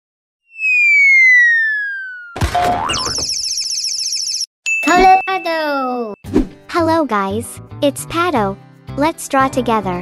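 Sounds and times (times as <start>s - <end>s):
cartoon crash: 0.5s - 3.4s
falling whistle: 0.5s - 3.6s
boing: 2.6s - 3.2s
high-pitched twinkling warble: 2.9s - 6.1s.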